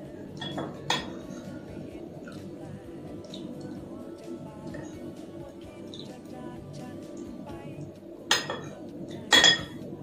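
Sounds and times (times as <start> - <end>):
metal spoon clinking on dish: 0.4 - 1.2, 8.3 - 9.8.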